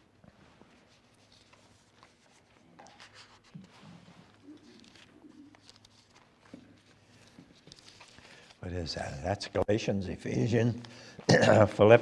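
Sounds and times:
thin pages rustling: 0:00.2 - 0:08.7.

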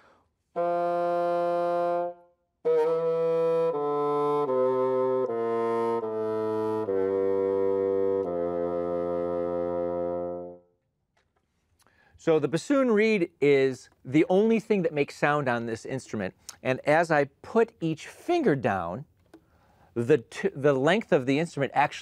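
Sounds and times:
bassoon playing: 0:00.4 - 0:10.8.

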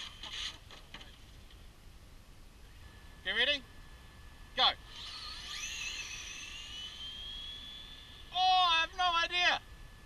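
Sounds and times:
rc car motors whining: 0:00.0 - 0:01.3, 0:04.6 - 0:09.6.

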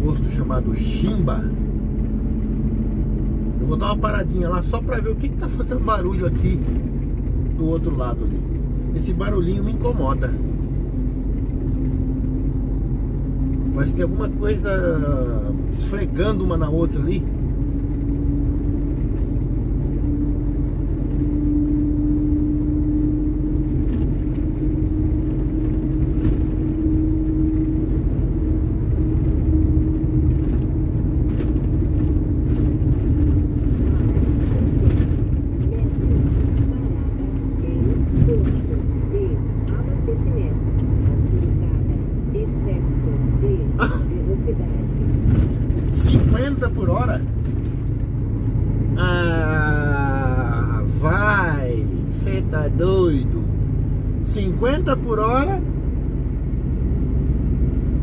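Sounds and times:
engine and road rumble: 0:00.0 - 0:58.0
mid-pitched drone: 0:17.6 - 0:56.2.

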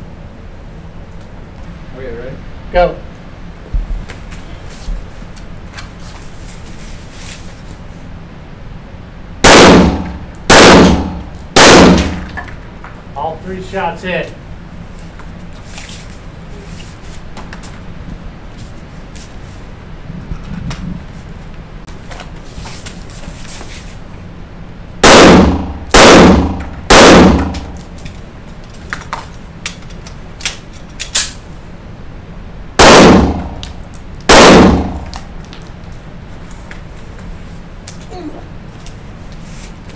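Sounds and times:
handgun shots echoing indoors: 0:09.4 - 0:12.5, 0:25.0 - 0:27.8, 0:32.8 - 0:35.2.

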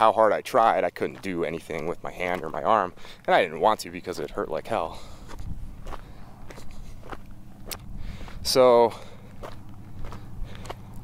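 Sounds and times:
footsteps walking: 0:00.0 - 0:11.0
steady low rumble: 0:00.0 - 0:11.0.

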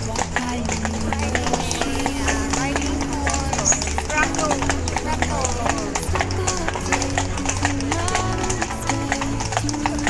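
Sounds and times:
horse hooves clip-clopping: 0:00.0 - 0:10.0
people talking: 0:00.0 - 0:10.0.

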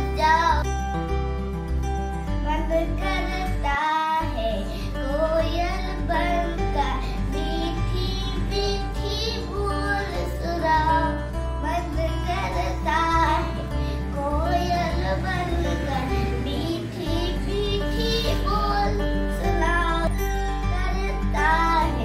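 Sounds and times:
girl singing: 0:00.0 - 0:00.7, 0:02.4 - 0:22.0
backing music with bass line: 0:00.0 - 0:22.0.

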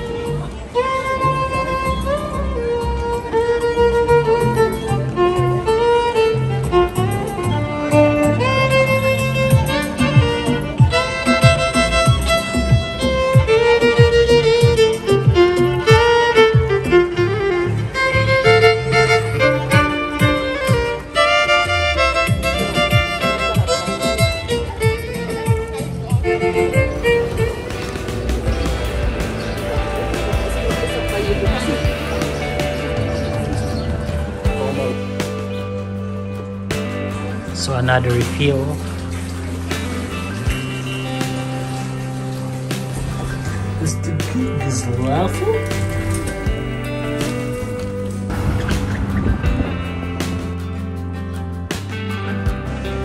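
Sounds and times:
violin melody: 0:00.0 - 0:52.4
steady low bass line: 0:00.0 - 0:53.0
street noise with low rumble: 0:00.0 - 0:53.0.

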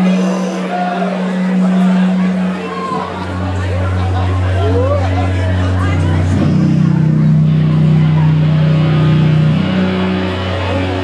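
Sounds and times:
distorted guitar and bass drone: 0:00.0 - 0:11.0.

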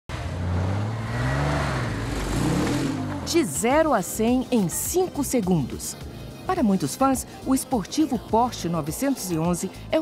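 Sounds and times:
car engine revving: 0:00.1 - 0:04.9.

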